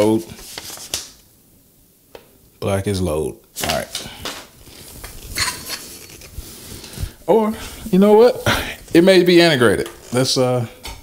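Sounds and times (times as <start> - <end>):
metal clinks and rubbing: 5.3 - 6.3.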